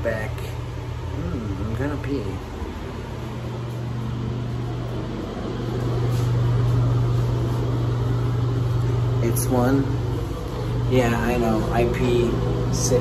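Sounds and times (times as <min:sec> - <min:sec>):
ventilation fan humming: 0:00.0 - 0:13.0.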